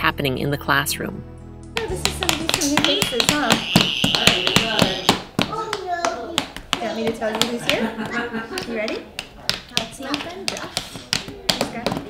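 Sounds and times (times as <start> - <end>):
toy hammers tapping: 2.0 - 12.0
high-pitched squeal: 2.8 - 5.2.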